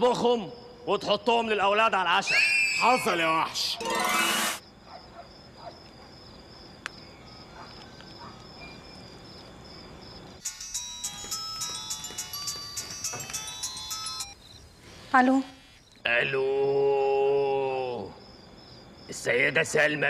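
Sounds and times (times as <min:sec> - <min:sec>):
phone ringtone melody: 0:10.4 - 0:14.4.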